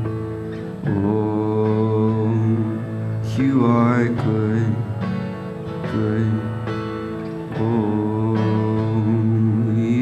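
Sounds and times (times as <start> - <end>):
strummed acoustic guitar: 0.0 - 10.0
man singing: 0.8 - 10.0.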